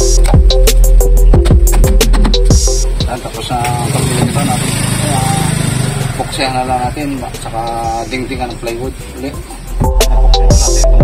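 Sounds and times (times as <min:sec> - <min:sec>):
man talking: 0:03.0 - 0:09.5, 0:10.3 - 0:11.0
small engine running: 0:03.6 - 0:07.6.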